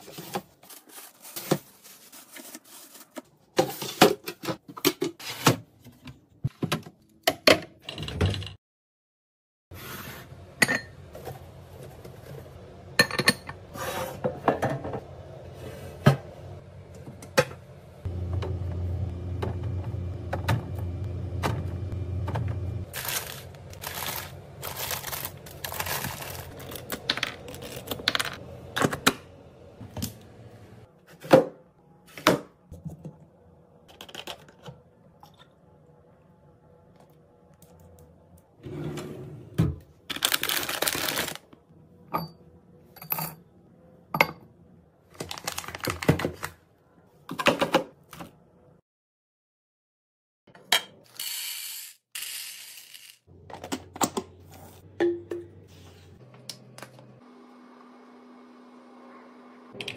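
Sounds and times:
plastic pouches crinkling: 0:00.1 - 0:03.2, 0:22.9 - 0:28.2, 0:40.1 - 0:41.4, 0:45.1 - 0:46.6.

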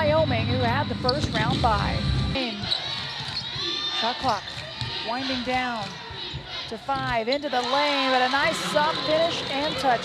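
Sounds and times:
arena background noise: 0:00.0 - 0:10.0.

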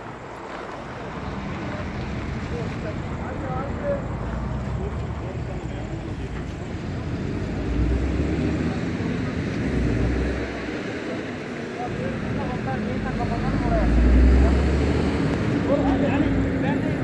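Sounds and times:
rumble of passing vehicles: 0:00.0 - 0:17.0.

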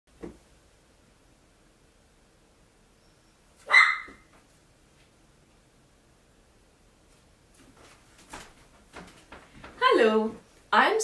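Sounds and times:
faint steady hum: 0:00.1 - 0:11.0
sharp animal cry: 0:03.6 - 0:04.3.

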